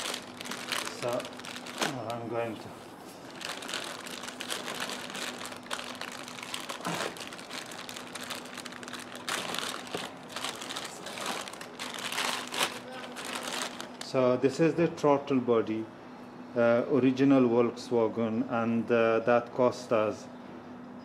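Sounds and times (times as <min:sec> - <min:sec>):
plastic bag crinkling: 0:00.0 - 0:02.6, 0:03.2 - 0:14.1.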